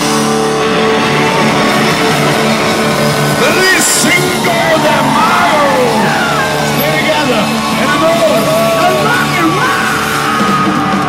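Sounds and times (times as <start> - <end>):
electric guitar lead bending: 0.0 - 11.0
live rock band playing: 0.0 - 11.0.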